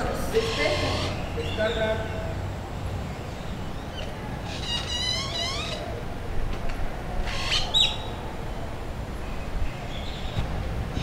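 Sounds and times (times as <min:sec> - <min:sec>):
bird squawking calls: 0:00.0 - 0:02.4, 0:03.2 - 0:06.1, 0:07.2 - 0:08.1.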